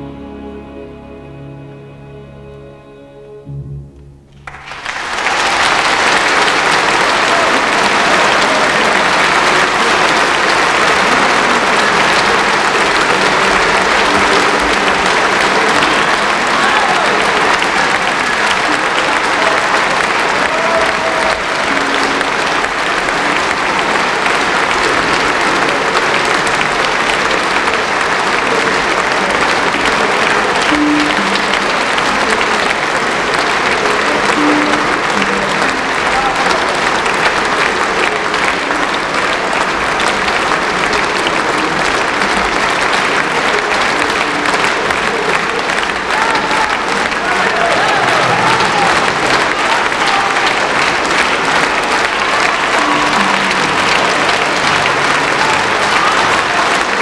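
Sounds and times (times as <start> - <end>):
audience applauding: 4.3 - 57.0.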